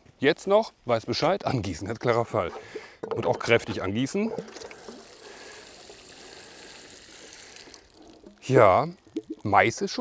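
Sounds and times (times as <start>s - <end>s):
water pouring onto soil: 3.5s - 10.0s.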